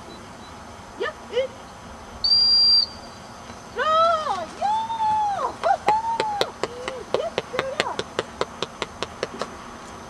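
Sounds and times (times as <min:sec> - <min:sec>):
high-pitched whistle blast: 0:02.2 - 0:03.2.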